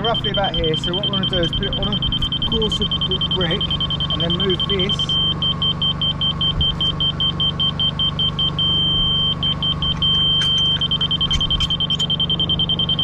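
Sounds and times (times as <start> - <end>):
high electronic beeps: 0.0 - 13.0
steady electronic tone: 0.0 - 13.0
steady low hum: 0.0 - 13.0.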